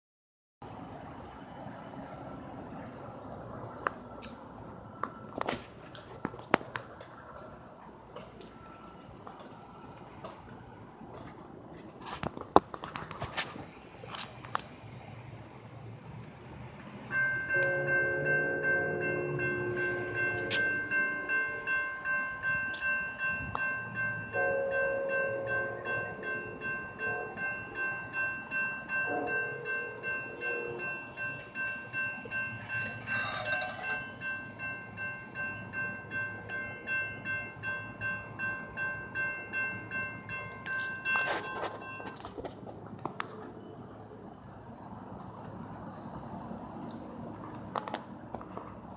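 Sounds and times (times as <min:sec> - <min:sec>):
crossing warning bells dinging: 0:00.7 - 0:48.9
locomotive horn: 0:17.5 - 0:21.8, 0:24.4 - 0:27.7, 0:28.9 - 0:31.5.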